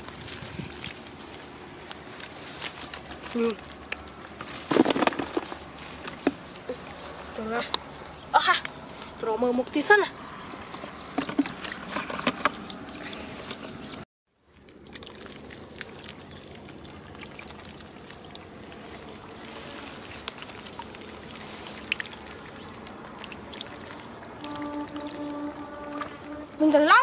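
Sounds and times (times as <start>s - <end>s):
small clicks and splashes: 0.0s - 7.0s, 10.6s - 26.8s
water trickling: 13.9s - 27.0s.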